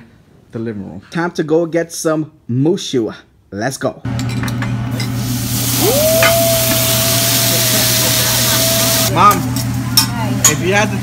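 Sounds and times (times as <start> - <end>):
food sizzling on a griddle: 4.9 - 9.5.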